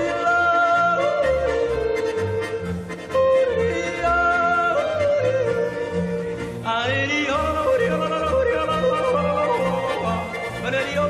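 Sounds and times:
folk band playing: 0.0 - 11.0
man yodeling: 0.0 - 11.0.

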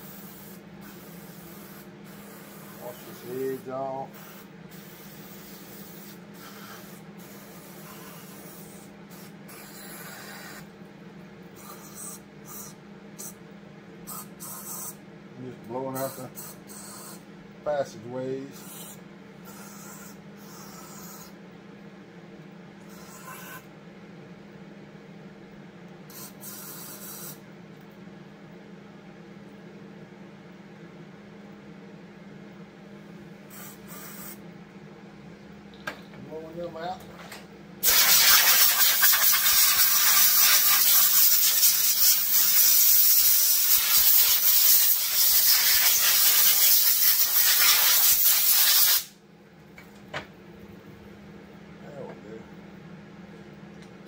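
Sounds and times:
compressed air blasts hissing: 0.0 - 10.7, 14.1 - 15.0, 33.5 - 34.4, 37.8 - 49.1.

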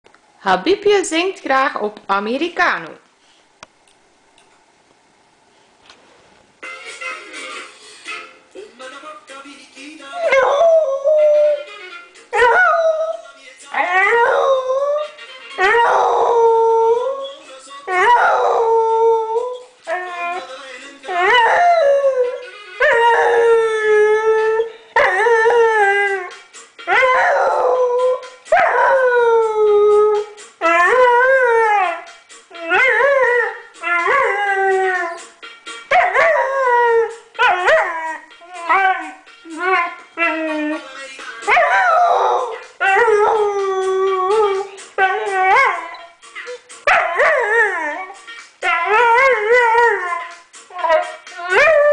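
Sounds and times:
dog howling: 15.6 - 20.5, 26.9 - 35.2, 35.9 - 40.8, 41.5 - 46.0, 46.9 - 51.9
song playing: 19.8 - 51.9.

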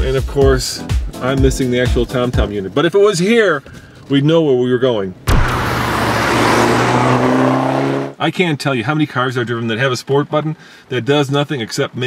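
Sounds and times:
tyre and road noise: 5.2 - 8.2
car engine driving by: 5.3 - 8.2.

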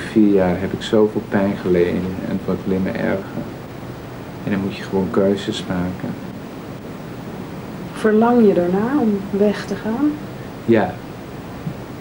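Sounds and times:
camcorder background hiss: 0.0 - 12.0.

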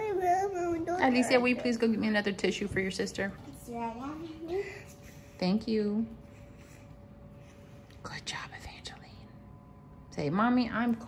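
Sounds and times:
person whispering: 8.0 - 9.3.

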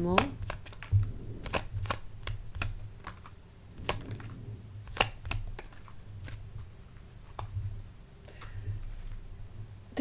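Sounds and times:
cards being shuffled: 0.0 - 9.3.

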